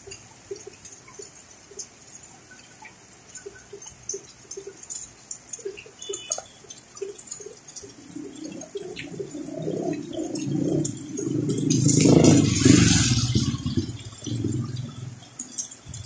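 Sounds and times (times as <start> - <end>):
vehicle passing on wet street: 6.0 - 16.0
heavy rain hiss: 6.4 - 15.8.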